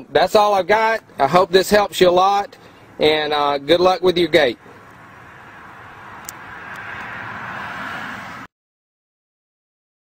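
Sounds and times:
car passing: 0:01.1 - 0:08.5.

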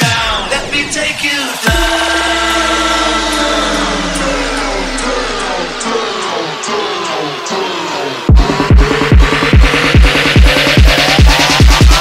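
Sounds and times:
sub-bass note: 0:01.7 - 0:06.5
synth tones sliding downward: 0:01.7 - 0:12.0.

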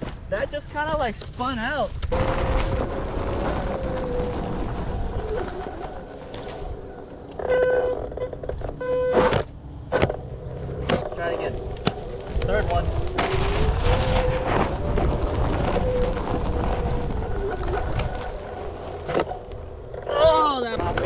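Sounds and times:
wind rumble: 0:00.0 - 0:21.0.

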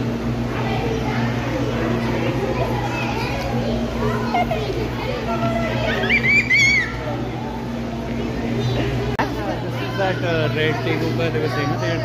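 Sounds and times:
indistinct chatter of voices: 0:00.0 - 0:12.0
steady low hum: 0:00.0 - 0:12.0.

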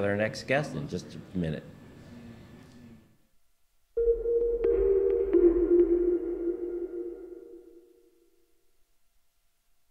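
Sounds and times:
low sustained synth tone: 0:04.0 - 0:08.4.

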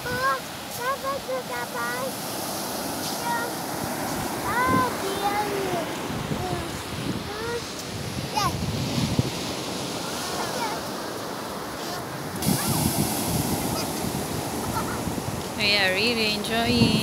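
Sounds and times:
ocean surf washing onto beach: 0:00.0 - 0:17.0
wind gusting on microphone: 0:00.0 - 0:17.0.

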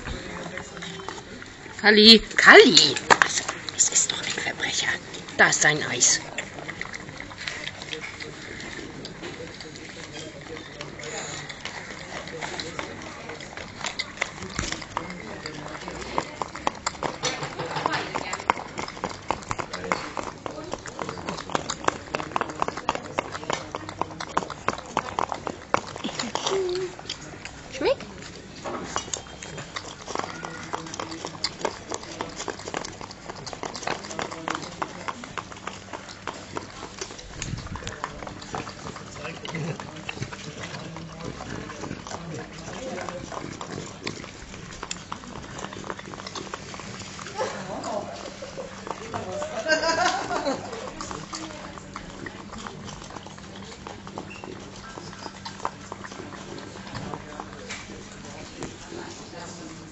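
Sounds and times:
dog licking and lapping: 0:00.0 - 0:59.9.

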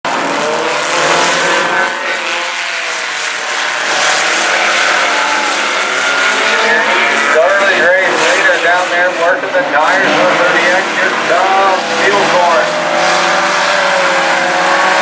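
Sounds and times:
race car engines droning: 0:00.1 - 0:15.0
announcer over loudspeaker: 0:04.7 - 0:13.2.

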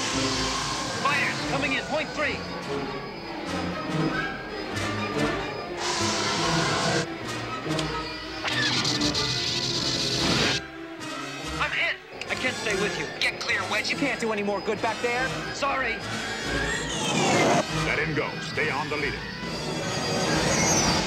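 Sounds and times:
starfighter engine roar: 0:00.0 - 0:07.1, 0:12.2 - 0:21.0
orchestral score: 0:00.0 - 0:09.6.

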